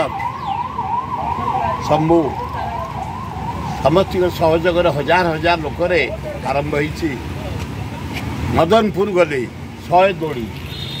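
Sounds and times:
siren yelping: 0.0s - 5.6s.

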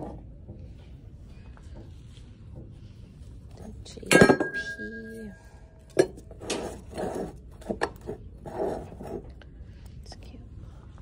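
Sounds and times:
faint whispering voice: 10.0s - 11.0s.

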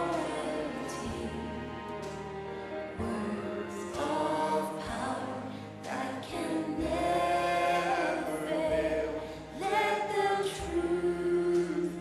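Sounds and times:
group singing worship song: 0.0s - 12.0s.

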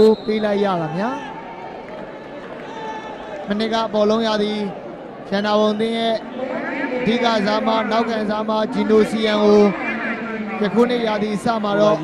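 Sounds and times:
stadium crowd murmur: 0.0s - 12.0s
commentator speaking: 5.3s - 12.0s.

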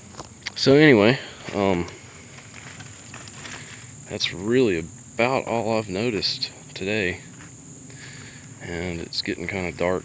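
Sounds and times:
crickets chirping: 0.0s - 10.0s
footsteps in dry leaves: 1.3s - 4.0s.

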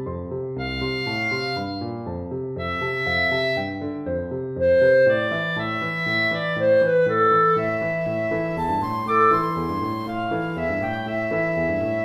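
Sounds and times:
flute clarinet and piano music: 0.0s - 12.0s.

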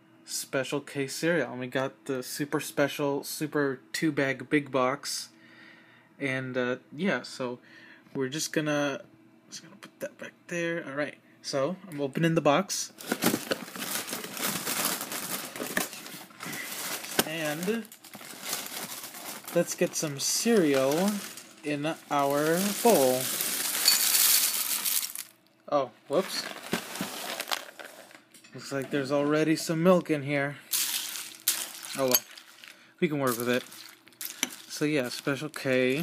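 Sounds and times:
plastic bag crinkling: 13.0s - 25.5s, 26.1s - 28.2s, 30.7s - 36.0s
spoon scraping through cereal: 30.8s - 34.8s.

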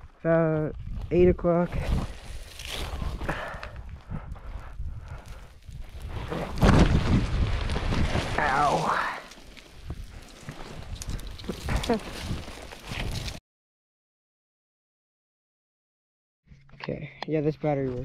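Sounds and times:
small stones skittering: 5.9s - 13.4s.

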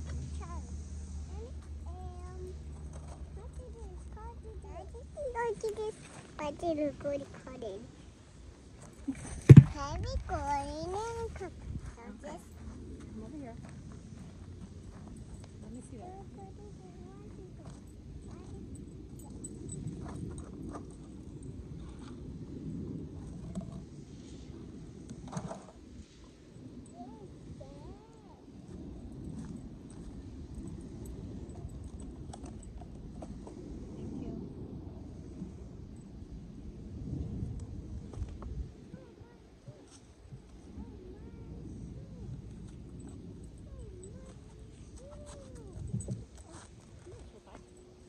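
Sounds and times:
steady low hum: 0.0s - 48.0s
child's high-pitched wordless voice: 0.4s - 0.7s, 1.3s - 2.6s, 3.4s - 7.9s, 9.6s - 12.4s, 16.0s - 18.8s, 26.9s - 28.5s, 38.9s - 40.0s, 40.7s - 42.4s, 43.6s - 45.9s.

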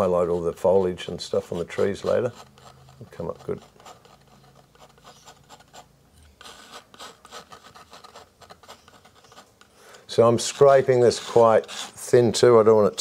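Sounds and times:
palette knife scraping canvas: 0.0s - 12.8s.

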